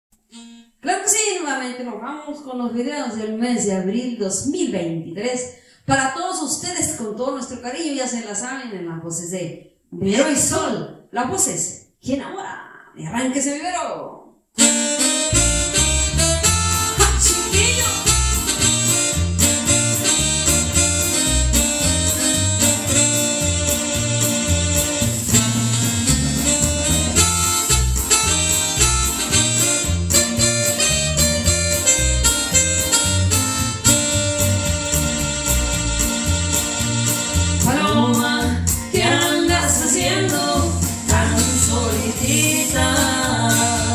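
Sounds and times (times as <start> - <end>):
electric bass: 14.6 - 43.9
electronic keyboard melody: 14.6 - 43.9
steady drum beat: 15.7 - 43.9.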